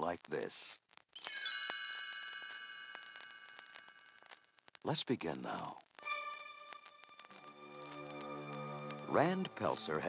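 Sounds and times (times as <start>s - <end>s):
page-turn chime ringing: 1.2s - 3.8s.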